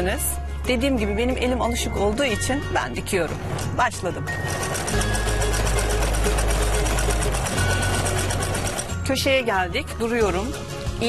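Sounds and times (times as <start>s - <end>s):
sewing machine stitching: 4.3s - 9.0s.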